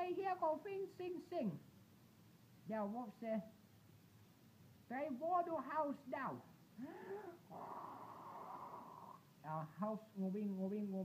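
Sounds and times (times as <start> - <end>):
child blowing out breath: 6.8 - 9.1.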